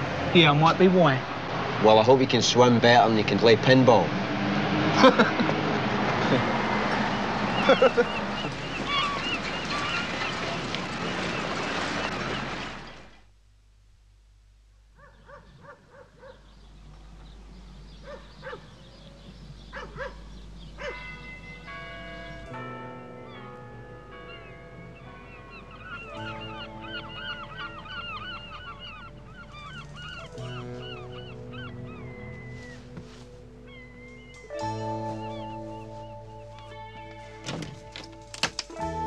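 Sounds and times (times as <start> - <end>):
honking bird calls: 6.8 - 13.1, 15.0 - 22.6, 23.2 - 38.0
music with long held notes: 21.0 - 39.0.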